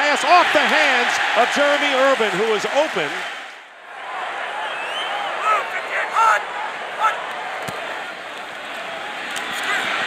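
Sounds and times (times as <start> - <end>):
crowd shouts: 0.0 - 10.0
stadium crowd roar: 0.0 - 10.0.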